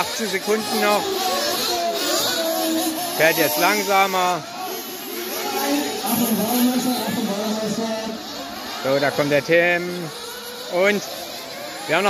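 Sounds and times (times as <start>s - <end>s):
indistinct voices talking: 0.0s - 12.0s
rc car engines buzzing: 0.0s - 12.0s.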